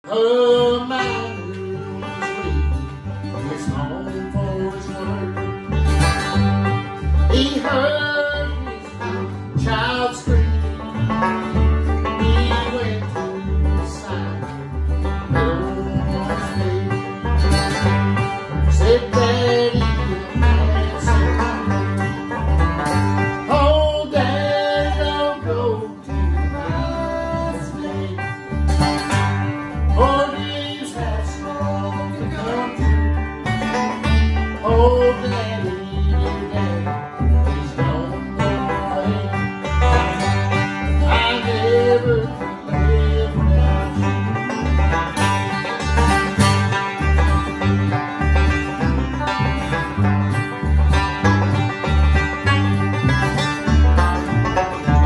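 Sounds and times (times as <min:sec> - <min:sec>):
man singing: 0:00.0 - 0:05.8, 0:07.2 - 0:11.0, 0:12.0 - 0:17.6, 0:18.6 - 0:21.9, 0:23.4 - 0:28.6, 0:29.9 - 0:33.0, 0:34.5 - 0:44.3
banjo picking: 0:00.0 - 0:55.0
strummed acoustic guitar: 0:00.0 - 0:55.0
upright bass plucked: 0:00.0 - 0:55.0.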